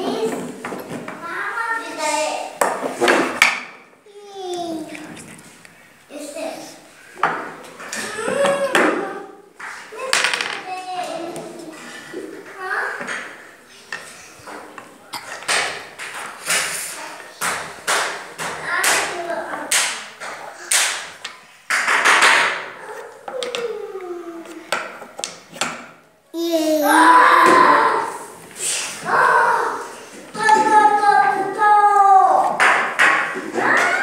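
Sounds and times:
children's voices: 0.0s - 2.6s, 4.1s - 5.5s, 6.1s - 14.7s, 16.5s - 17.6s, 18.4s - 21.0s, 22.7s - 24.8s, 26.4s - 32.8s.

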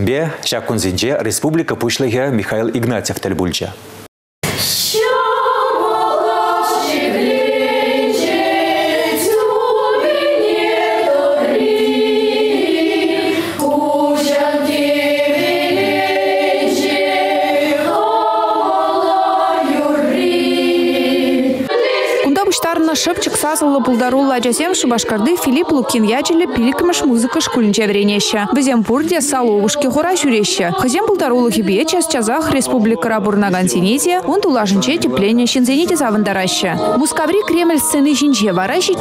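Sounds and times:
children's choir singing: 4.8s - 39.0s.

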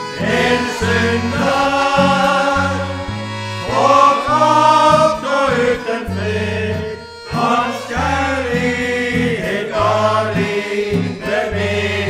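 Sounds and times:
accordion bass pattern: 0.0s - 12.0s
men's choir singing a hymn: 0.0s - 12.0s.

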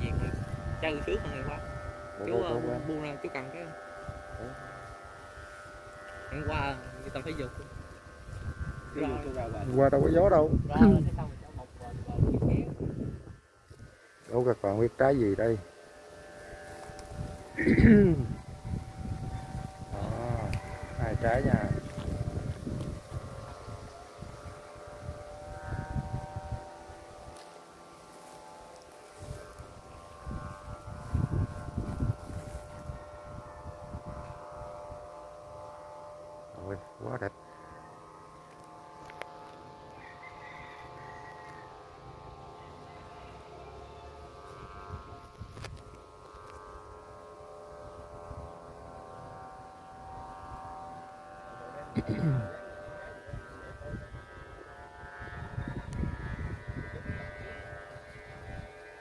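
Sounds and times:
wind buffeting microphone: 0.0s - 14.0s, 16.4s - 27.3s, 29.1s - 35.8s, 44.6s - 59.0s
kite flutes humming chord: 0.0s - 59.0s.

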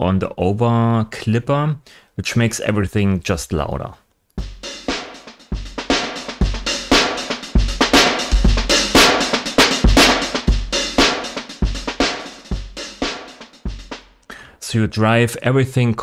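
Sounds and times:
compressed drum loop: 4.4s - 14.2s.

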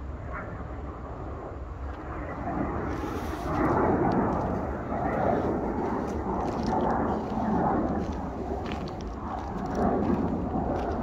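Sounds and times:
steady low rumble: 0.0s - 11.0s
wind buffeting microphone: 0.0s - 11.0s.

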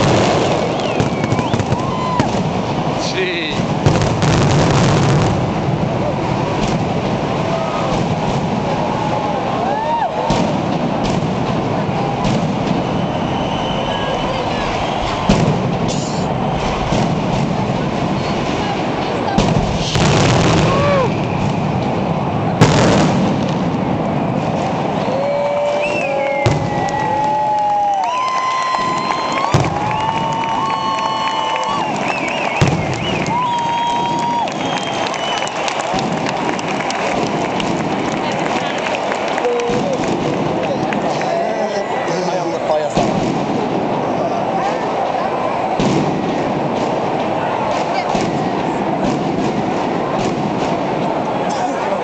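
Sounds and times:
whistling fireworks: 0.0s - 51.9s
crowd voices: 0.0s - 52.0s
firecrackers crackling: 0.0s - 52.0s
firework bangs: 0.0s - 52.0s.

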